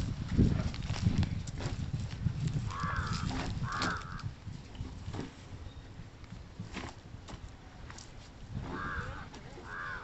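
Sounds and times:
bamboo pole prodding soil: 0.0 - 5.5.

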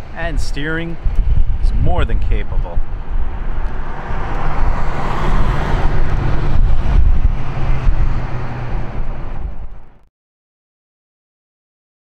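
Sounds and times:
road and tyre noise: 0.0 - 10.1
car engine humming: 2.8 - 10.1.

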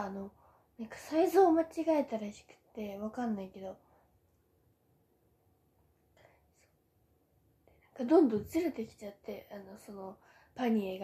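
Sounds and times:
woman speaking: 0.0 - 3.8, 8.0 - 11.0.

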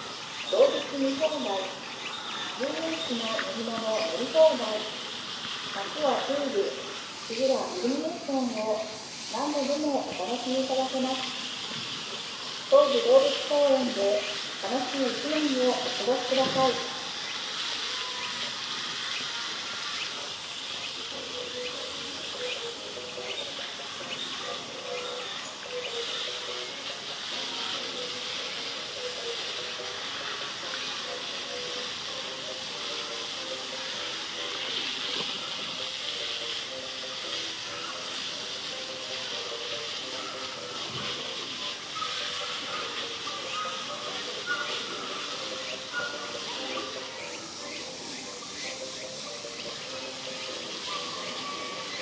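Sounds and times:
high-pitched outdoor hiss: 0.0 - 52.0.

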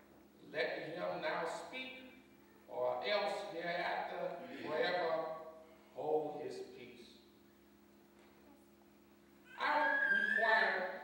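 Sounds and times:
faint steady hum: 0.0 - 11.0
high-pitched human voice: 9.5 - 10.6.

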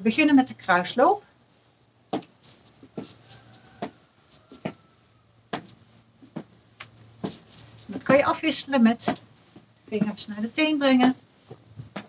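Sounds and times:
faint bird chirps: 2.4 - 5.3, 6.8 - 8.4.

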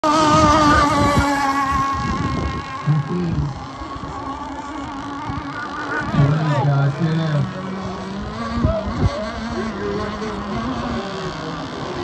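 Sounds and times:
model boat motor whine: 0.0 - 12.0.

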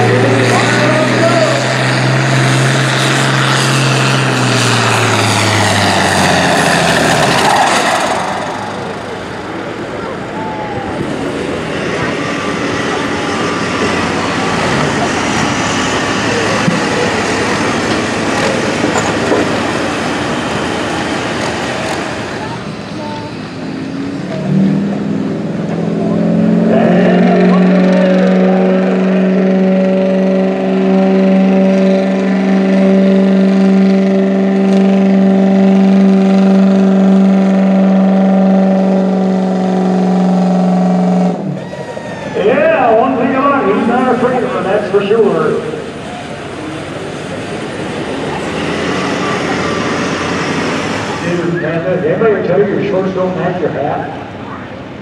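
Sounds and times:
pickup engine at high revs: 0.0 - 55.0
tractor engine roaring: 0.0 - 55.0.

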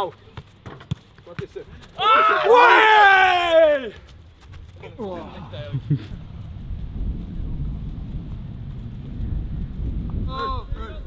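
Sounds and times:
wind buffeting microphone: 4.5 - 11.0.

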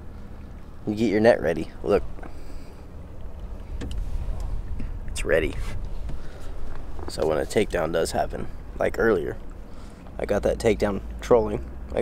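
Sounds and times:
light knocks and clicks in boat: 0.0 - 12.0
steady low rumble: 0.0 - 12.0.

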